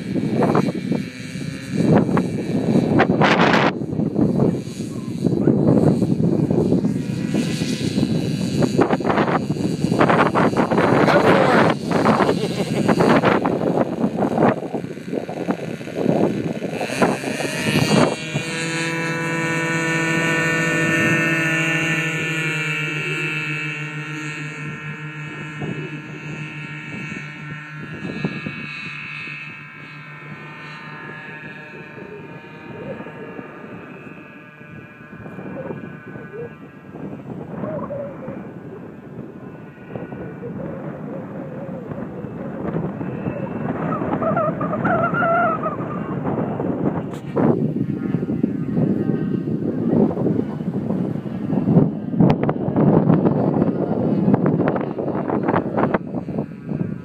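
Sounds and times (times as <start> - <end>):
model plane engines buzzing: 0.0 - 57.0.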